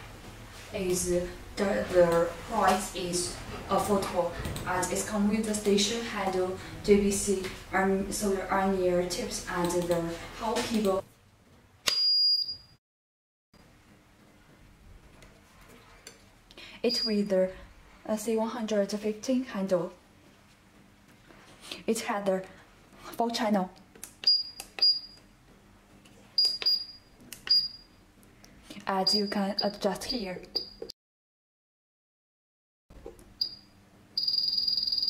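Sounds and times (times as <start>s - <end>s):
high electronic beep: 11.9s - 12.7s, 29.0s - 29.8s, 34.2s - 35.0s
short high beeps: 34.2s - 35.0s.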